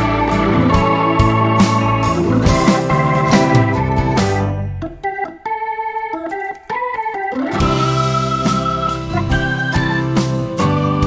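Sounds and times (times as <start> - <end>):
organ-like keyboard music: 0.0 - 11.0.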